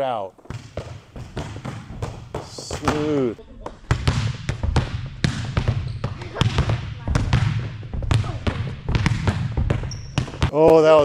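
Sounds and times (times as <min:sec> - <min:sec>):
balls bouncing on hard floor: 0:00.4 - 0:11.0.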